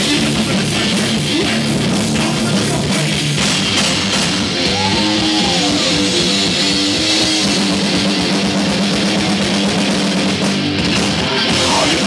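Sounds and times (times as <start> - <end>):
distorted electric guitar: 0.0 - 12.0
drum kit: 0.0 - 12.0
electric bass: 0.0 - 12.0.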